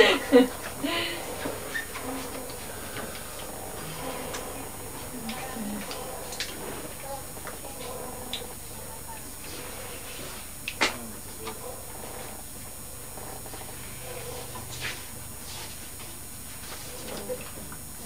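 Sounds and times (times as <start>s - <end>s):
faint voices murmuring: 0.2s - 12.4s.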